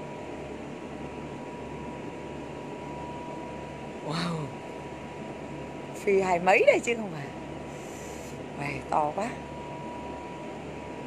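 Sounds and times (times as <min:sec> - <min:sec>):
machinery hum and hiss: 0:00.0 - 0:11.0.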